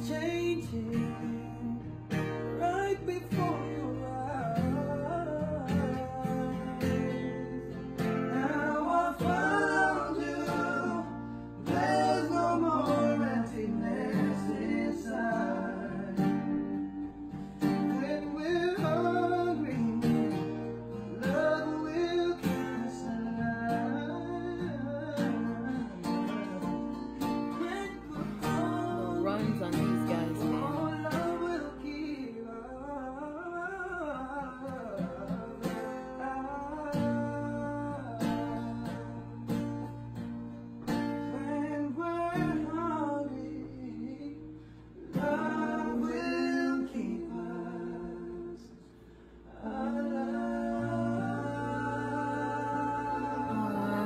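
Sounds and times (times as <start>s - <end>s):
men singing a pop ballad: 0.0s - 39.6s, 41.2s - 54.0s
acoustic guitar chords: 0.0s - 54.0s.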